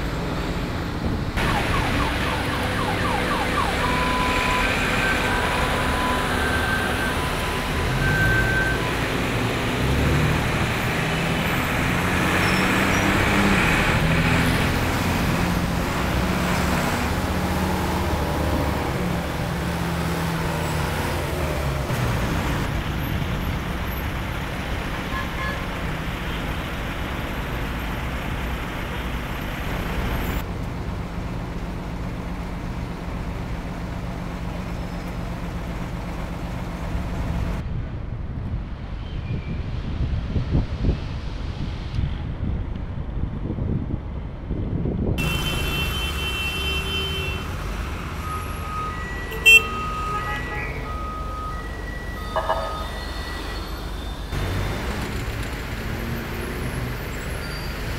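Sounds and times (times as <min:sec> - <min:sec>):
city street traffic: 0:00.0 - 0:57.9.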